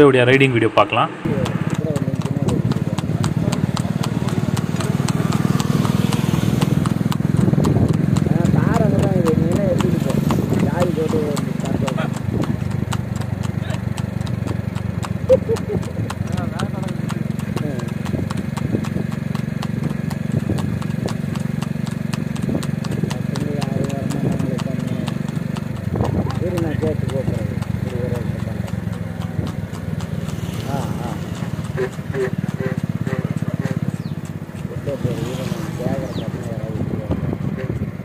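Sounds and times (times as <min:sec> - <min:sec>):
engine humming: 0:00.0 - 0:38.0
hooves clip-clopping on asphalt: 0:01.5 - 0:38.0.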